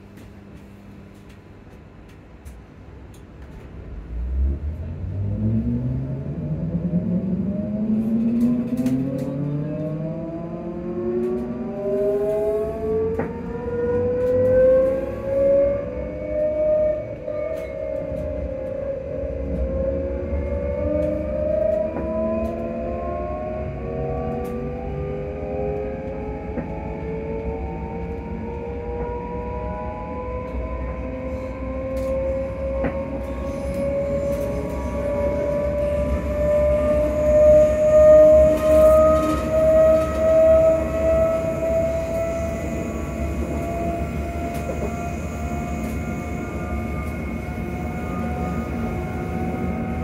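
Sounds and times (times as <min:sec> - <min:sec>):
low train running rumble: 0:00.0 - 0:50.0
electric train traction whine: 0:02.1 - 0:50.0.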